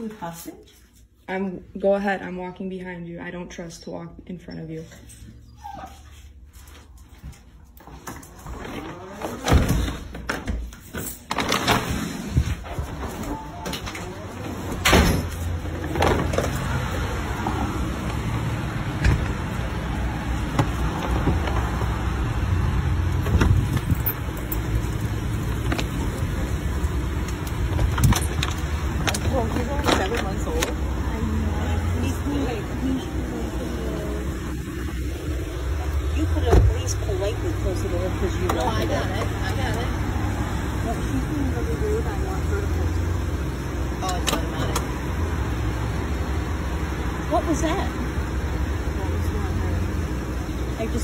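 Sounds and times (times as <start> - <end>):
motor vehicle rumble: 12.3 - 51.0.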